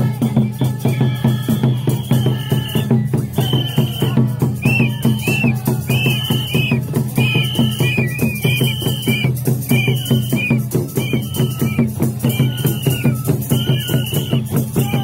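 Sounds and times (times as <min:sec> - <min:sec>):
bamboo flute high notes: 0:00.0 - 0:15.0
fast steady drumming: 0:00.0 - 0:15.0.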